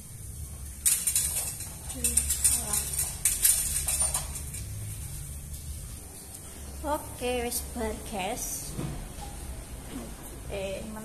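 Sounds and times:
wire hangers clinking on metal rack: 0.8s - 5.0s.

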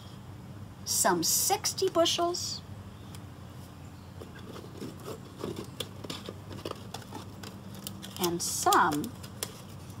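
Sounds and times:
low steady hum: 0.0s - 10.0s
hands tapping and rustling felt pieces: 4.2s - 10.0s.

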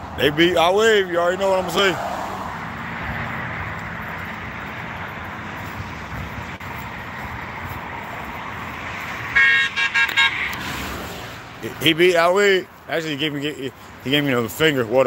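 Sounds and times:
highway traffic noise: 0.0s - 15.0s
car horn short high beeps: 9.4s - 10.6s.

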